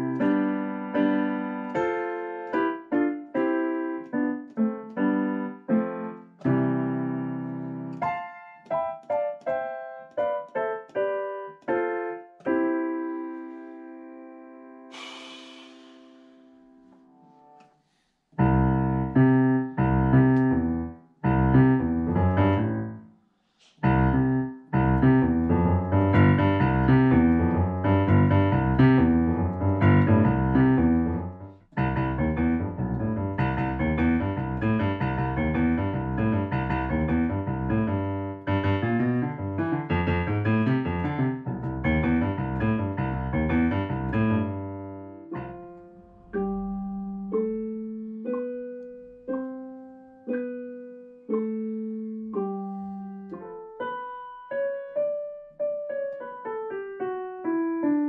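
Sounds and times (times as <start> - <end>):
piano chords over bass line: 0.0 - 17.7, 18.4 - 23.0, 23.8 - 58.0
piano notes and chords: 0.0 - 58.0.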